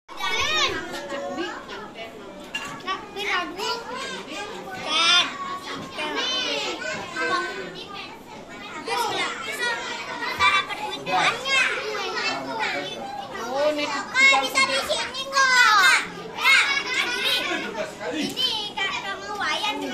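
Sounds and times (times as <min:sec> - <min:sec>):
children chattering: 0:00.1 - 0:19.9.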